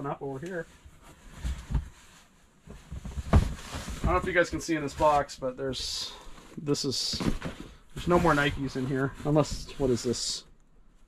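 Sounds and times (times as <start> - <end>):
faint rustling: 0.2 - 11.0
soft thumps in cardboard box: 2.7 - 4.5.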